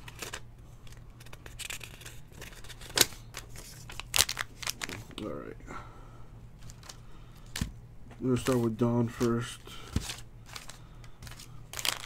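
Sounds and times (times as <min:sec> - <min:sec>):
foil card packs crinkling: 0:00.0 - 0:05.3, 0:06.6 - 0:12.0.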